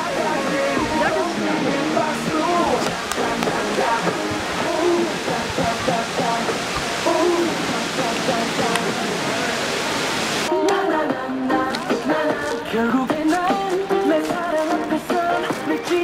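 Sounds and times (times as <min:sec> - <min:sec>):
people talking: 0:00.0 - 0:10.8
fountain water splashing: 0:00.0 - 0:16.0
pop music with singing: 0:00.0 - 0:16.0.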